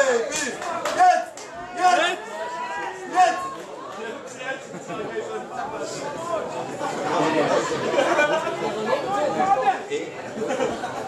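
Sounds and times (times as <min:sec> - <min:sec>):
crowd babble of overlapping voices: 0:00.0 - 0:11.0.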